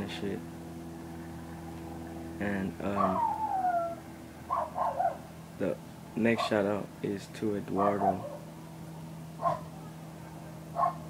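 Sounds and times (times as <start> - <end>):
steady low hum: 0.0 - 11.0
dog barking: 4.5 - 5.2, 7.8 - 8.4, 9.4 - 9.9, 10.7 - 11.0.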